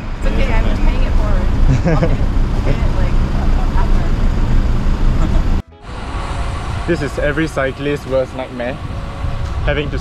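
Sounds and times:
bus engine rumbling: 0.0 - 10.0
road noise: 0.0 - 10.0
wind: 0.0 - 10.0.

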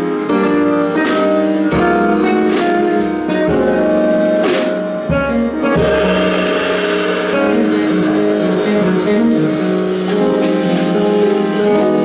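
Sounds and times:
guitar: 0.0 - 12.0
jazz band playing: 0.0 - 12.0.

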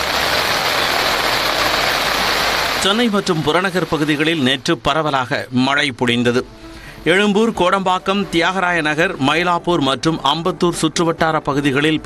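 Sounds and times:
traffic rumbling on wet road: 0.0 - 4.4
heavy rain on road: 0.0 - 4.6.

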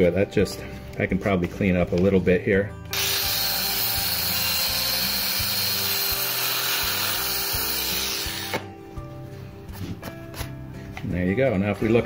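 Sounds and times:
power grinder running: 2.9 - 8.7.

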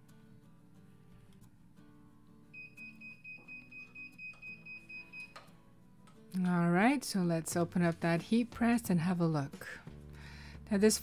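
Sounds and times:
timer beeping: 2.6 - 5.4.

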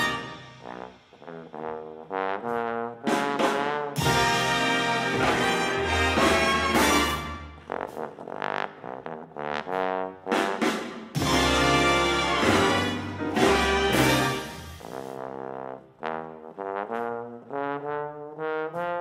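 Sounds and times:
bass trombone jazz solo: 0.0 - 19.0
big band playing: 0.0 - 19.0.

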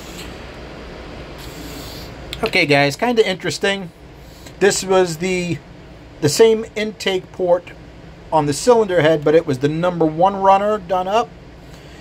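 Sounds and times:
low hum: 0.0 - 12.0.

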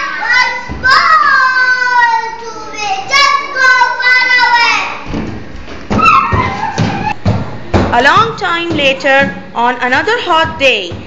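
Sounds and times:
child's footsteps on padded mat: 5.1 - 11.0.

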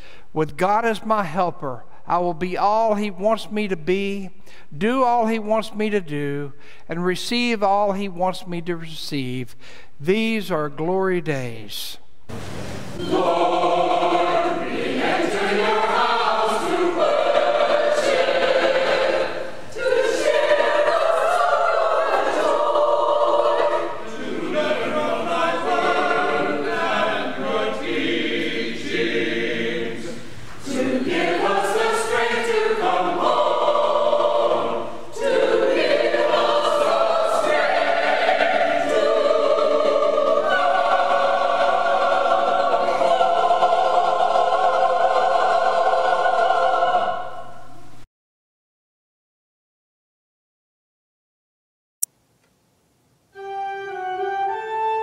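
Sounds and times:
mixed choir singing: 13.0 - 47.8.

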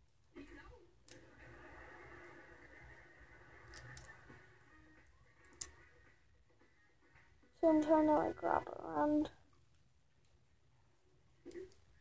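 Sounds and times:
faint steady background tones: 0.0 - 12.0.

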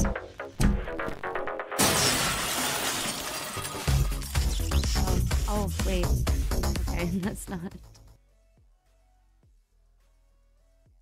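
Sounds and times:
music: 0.0 - 1.8, 3.5 - 11.0
glass breaking: 1.8 - 4.4.

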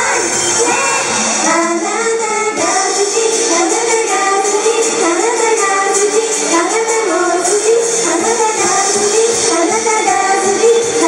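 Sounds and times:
recorded pop backing track: 0.0 - 11.0
women singing into microphones: 0.0 - 11.0.

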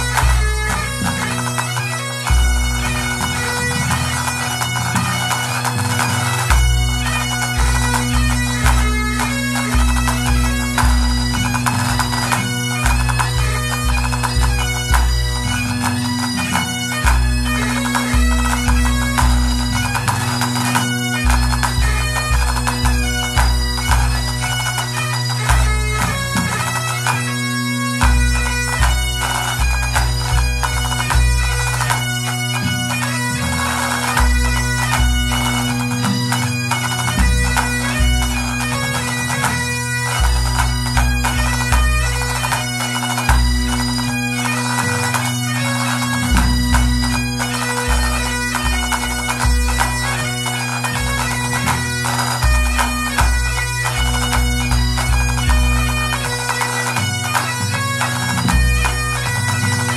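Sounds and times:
bagpipe band playing: 0.0 - 59.9
low drum beat: 2.3 - 44.2, 46.2 - 56.4.

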